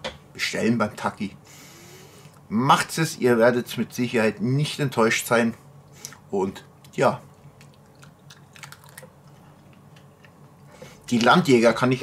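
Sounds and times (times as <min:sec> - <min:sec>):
man chewing sausage: 0:07.3 - 0:11.1.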